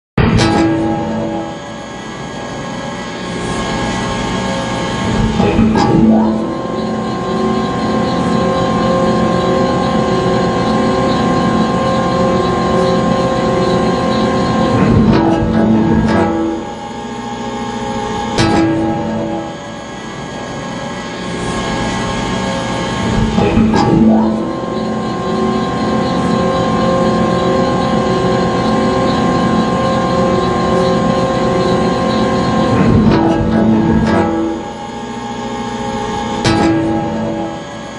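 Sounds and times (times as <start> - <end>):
constant whining tones: 0.2 - 37.9
conveyor machinery humming: 0.2 - 37.9.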